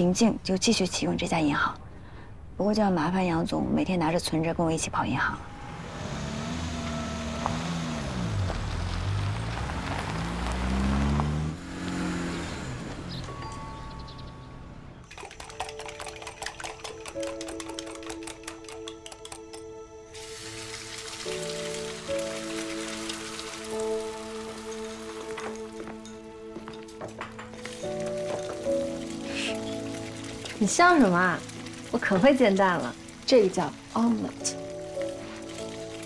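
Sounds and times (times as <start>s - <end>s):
soft music: 2.6s - 36.0s
car engine revving: 5.4s - 15.0s
eggs whisked in a bowl: 15.1s - 19.3s.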